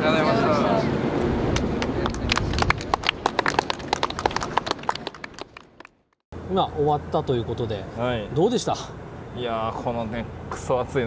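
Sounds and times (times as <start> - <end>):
small group clapping: 1.5 - 6.2.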